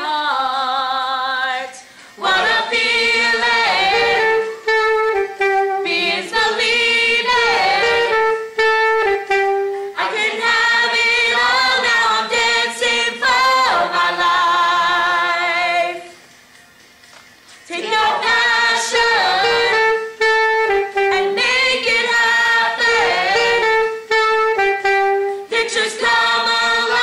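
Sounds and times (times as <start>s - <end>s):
young voices singing together: 0.0s - 8.6s, 9.9s - 16.2s, 17.7s - 20.1s, 21.0s - 24.0s, 25.4s - 27.0s.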